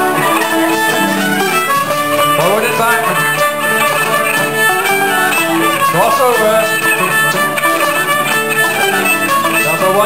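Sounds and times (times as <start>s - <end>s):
acoustic guitar: 0.0s - 10.0s
banjo: 0.0s - 10.0s
fiddles playing a jig: 0.0s - 10.0s.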